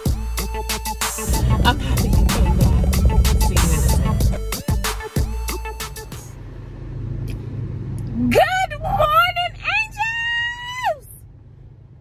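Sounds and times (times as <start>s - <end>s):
intro music: 1.2s - 6.2s
car rumbling while moving: 1.3s - 12.0s.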